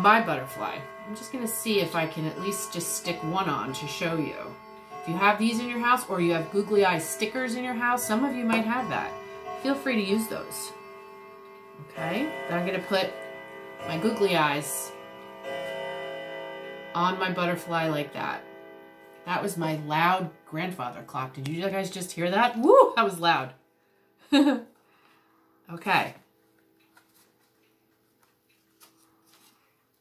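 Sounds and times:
grandfather clock chiming: 0.0s - 23.5s
faint steady hum: 0.0s - 30.0s.

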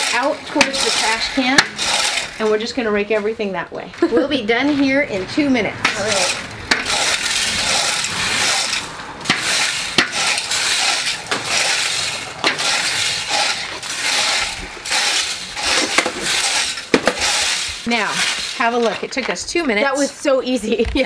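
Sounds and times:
steel tines clicking: 0.0s - 3.2s, 5.8s - 20.0s
metal rakes scraping dirt: 0.0s - 3.4s, 4.7s - 20.7s.

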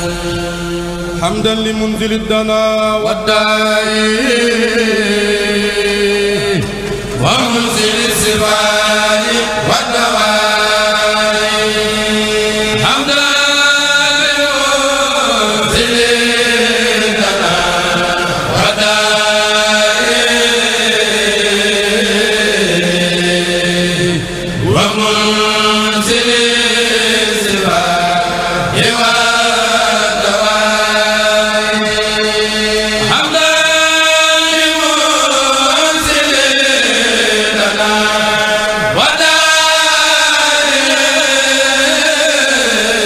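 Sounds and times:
men chanting over sound system: 0.0s - 43.0s.

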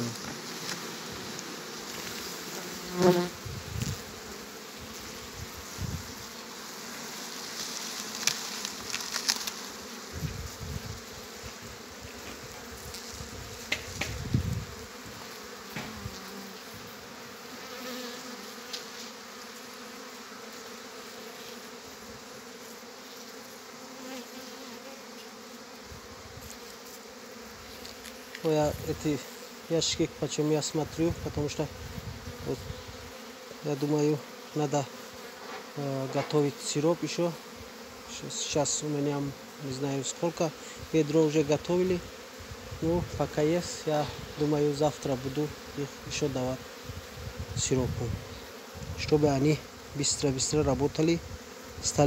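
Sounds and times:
honeybees buzzing: 0.0s - 52.0s
knocks and rustles of hive: 0.0s - 52.0s.

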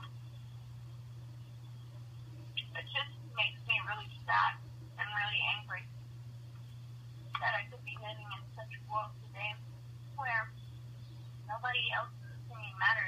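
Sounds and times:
steady low hum: 0.0s - 13.0s
person talking over telephone: 2.6s - 5.9s, 7.4s - 9.6s, 10.2s - 10.5s, 11.5s - 13.0s.

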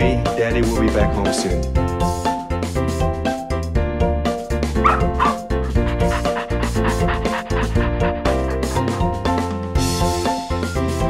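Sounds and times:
small dog yipping: 4.8s - 5.5s.

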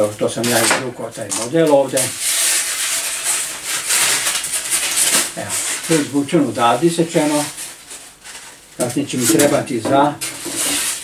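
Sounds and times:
stiff model rasping and scraping: 10.2s - 11.0s.

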